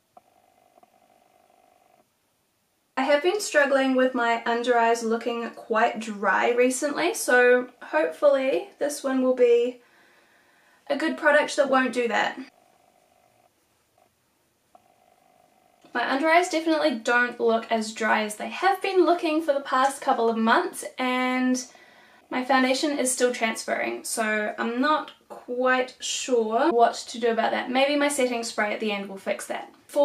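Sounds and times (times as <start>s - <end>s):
quiet steady hum: 0.0s - 30.0s
woman talking: 3.0s - 9.8s, 10.9s - 12.6s, 15.9s - 21.7s, 22.3s - 30.0s.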